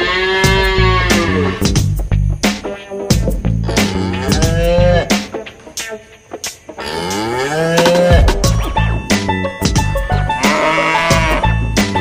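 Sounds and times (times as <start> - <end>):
cattle mooing: 0.0 - 1.6, 3.7 - 5.1, 6.8 - 8.2, 10.3 - 11.6.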